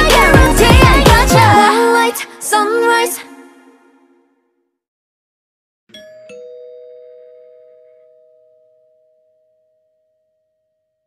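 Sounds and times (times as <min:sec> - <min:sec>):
chime ringing two steady tones: 0:05.9 - 0:11.0.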